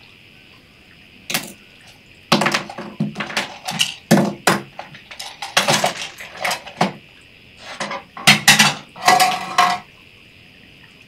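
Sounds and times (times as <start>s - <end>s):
pens clinking and clattering: 1.3s - 1.6s, 2.3s - 7.0s, 7.6s - 9.8s.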